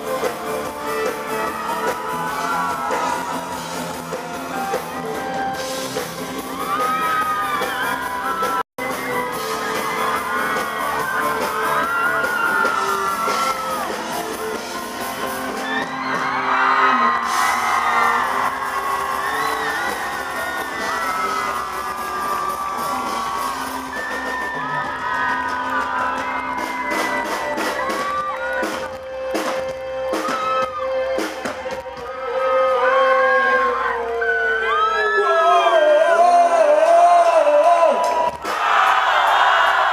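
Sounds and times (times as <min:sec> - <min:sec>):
live rock band playing: 0:00.0 - 0:33.2
shouts and whoops: 0:01.3 - 0:04.4, 0:06.4 - 0:08.6, 0:09.4 - 0:14.0, 0:15.6 - 0:28.9, 0:30.1 - 0:36.3.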